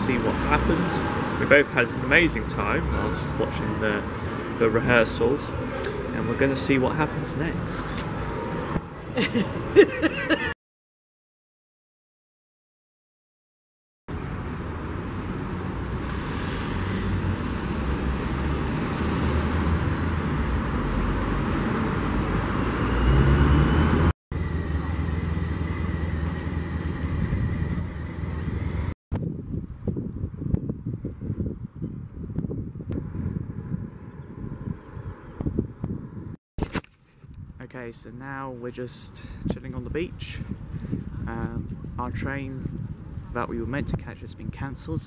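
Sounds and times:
road traffic rumble: 0.0 - 10.6, 14.1 - 36.4, 37.3 - 44.8
wind buffeting microphone: 25.7 - 36.4, 37.1 - 37.6, 39.2 - 45.0.

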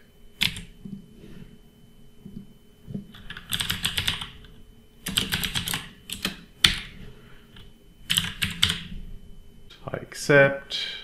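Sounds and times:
computer keyboard typing: 0.4 - 0.8, 3.1 - 6.9, 7.6 - 8.9.

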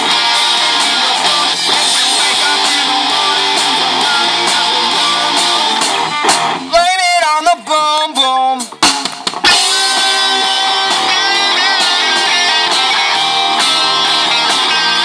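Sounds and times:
live rock band playing: 0.0 - 15.0
wavering lead guitar notes: 0.0 - 15.0.

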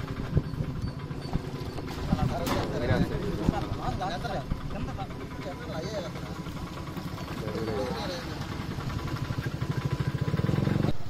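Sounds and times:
small engine running: 0.0 - 11.0.

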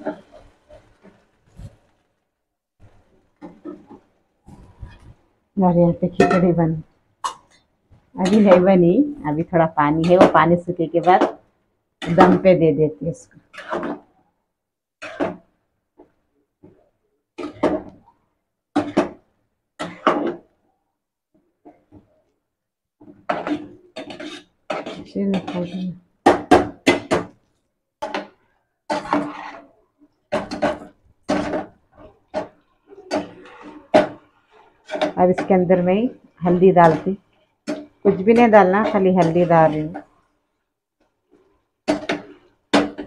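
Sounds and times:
metal spoon scraping metal pot: 23.3 - 25.9, 28.9 - 29.7, 32.3 - 40.0.

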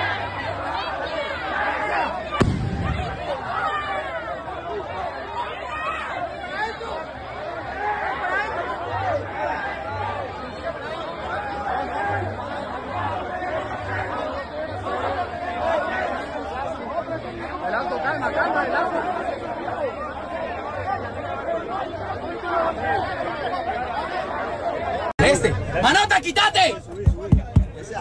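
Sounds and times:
crowd of men talking: 0.0 - 28.0.

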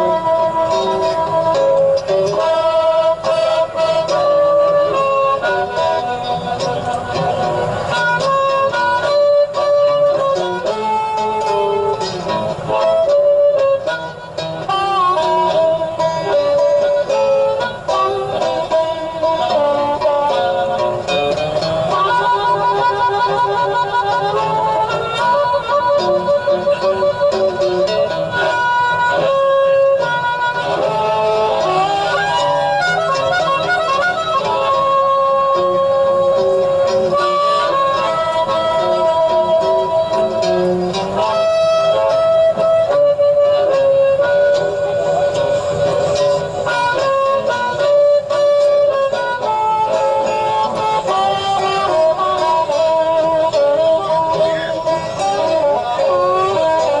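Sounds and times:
blues harmonica playing: 0.0 - 57.0
guitar backing: 0.0 - 57.0.

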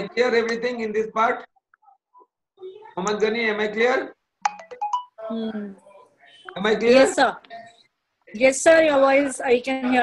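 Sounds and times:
electronic ringtone: 4.4 - 5.2.

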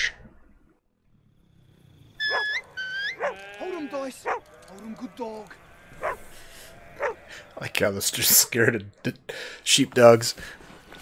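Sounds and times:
sheep bleating: 2.3 - 8.2
sharp clicks: 3.4 - 5.7.

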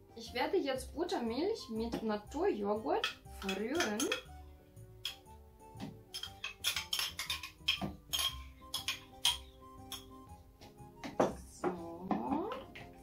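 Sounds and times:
soft background music: 0.0 - 13.0
teaspoon scraping ceramic cup: 6.1 - 10.1.

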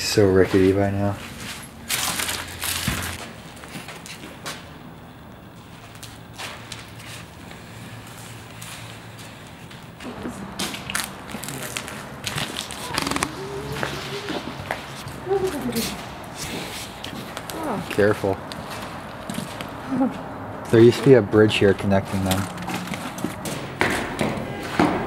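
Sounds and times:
footsteps crunching over broken glass: 1.3 - 4.4.

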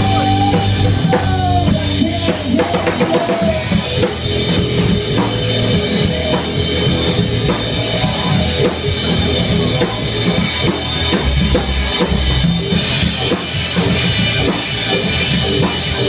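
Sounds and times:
bass drum and snare beat: 0.0 - 16.0
live band playing: 0.0 - 16.0.

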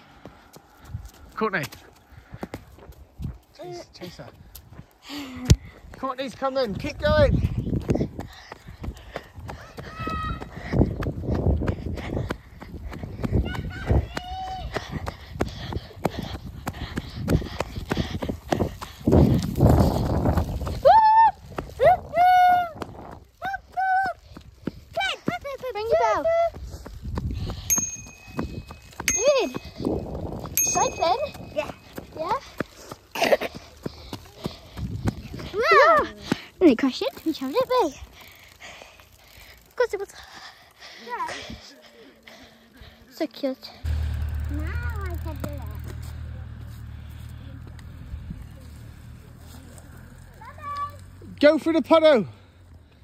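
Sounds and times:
running footsteps on tarmac: 0.0 - 53.0
wind on microphone: 6.7 - 23.5, 26.5 - 32.2, 34.5 - 35.7
children's voices and squeals: 9.6 - 10.9, 13.2 - 15.1, 20.7 - 26.8, 35.3 - 36.3, 50.3 - 51.2.

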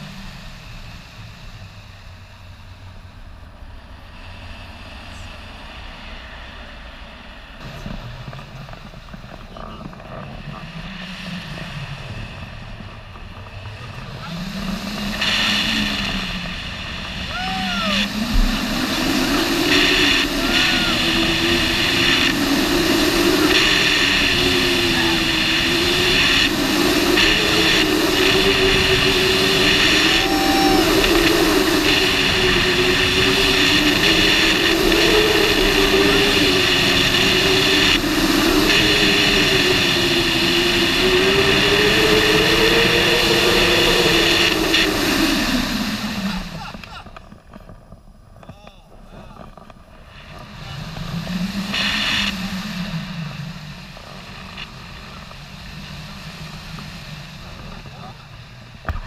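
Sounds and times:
wind rushing over microphone: 0.0 - 59.0
wavering tone sliding in pitch: 17.3 - 36.9.

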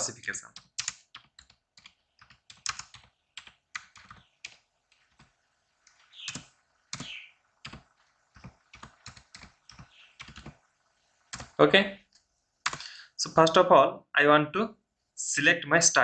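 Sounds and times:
computer keyboard typing: 0.4 - 10.7, 11.3 - 11.6, 12.6 - 12.9.

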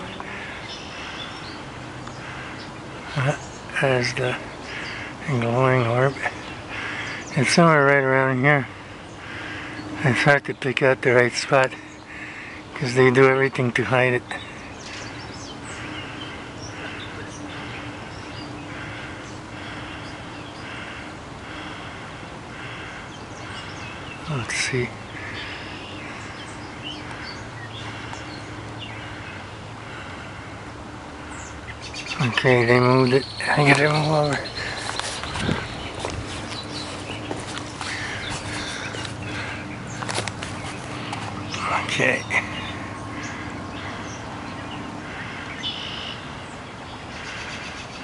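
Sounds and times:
birds calling: 0.0 - 48.0
steady background hiss: 0.0 - 48.0.

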